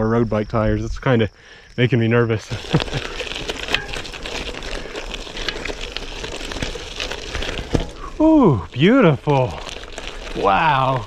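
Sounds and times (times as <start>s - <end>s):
bicycle tyres crunching on gravel: 0.0s - 11.0s
stones clicking and bike rattling: 1.8s - 11.0s.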